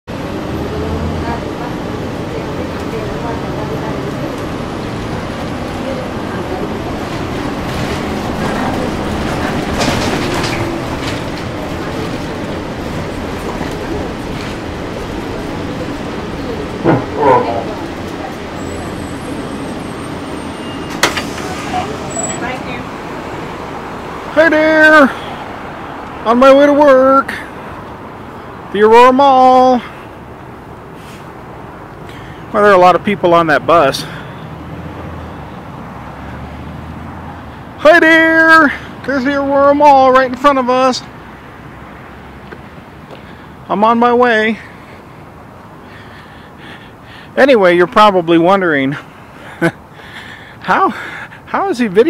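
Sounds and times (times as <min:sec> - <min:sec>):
road and tyre noise: 0:00.0 - 0:52.0
bus engine hum: 0:00.1 - 0:24.3.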